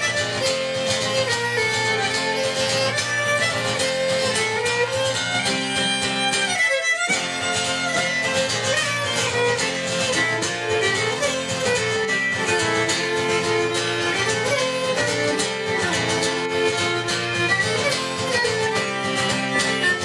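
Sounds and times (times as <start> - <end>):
acoustic guitar accompaniment: 0.0 - 20.0
fiddle playing a folk tune: 0.0 - 20.0.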